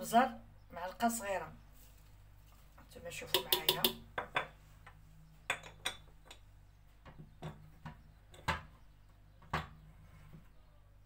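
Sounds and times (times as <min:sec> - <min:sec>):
metal spoon clinking on dishes: 0:03.3 - 0:04.4.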